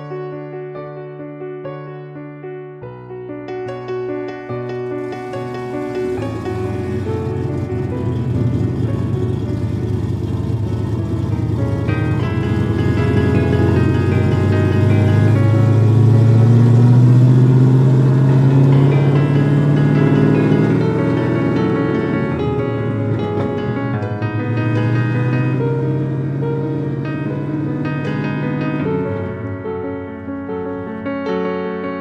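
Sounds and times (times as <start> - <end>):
background music: 0.0 - 32.0
car engine accelerating: 4.6 - 31.0.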